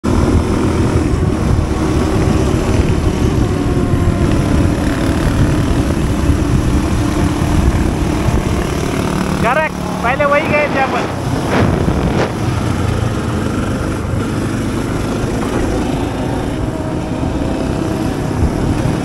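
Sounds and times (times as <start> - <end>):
dirt motorcycle engine: 0.0 - 19.0
wind rumble on microphone: 0.0 - 19.0
person speaking: 9.4 - 11.2.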